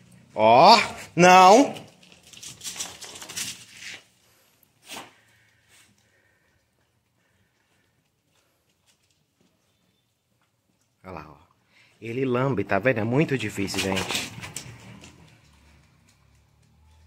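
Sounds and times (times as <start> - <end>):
dog rustling and scuffling: 13.5 - 15.6.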